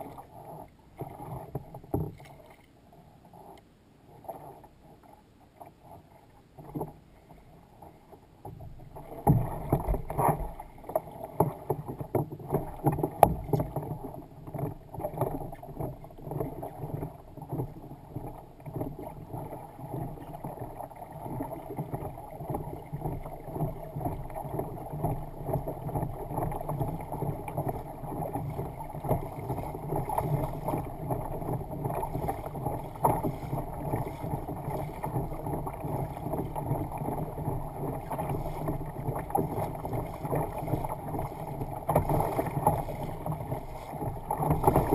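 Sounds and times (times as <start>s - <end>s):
water splashing along kayak hull: 0.0s - 44.9s.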